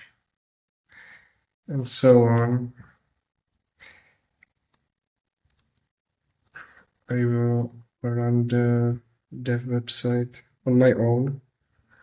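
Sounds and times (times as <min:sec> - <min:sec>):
faint breath: 0:00.9 - 0:01.6, 0:03.8 - 0:04.4.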